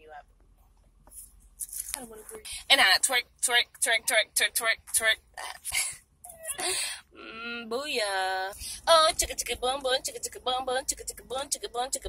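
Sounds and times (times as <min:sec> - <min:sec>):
woman speaking: 0:00.0 - 0:00.2, 0:01.8 - 0:12.0.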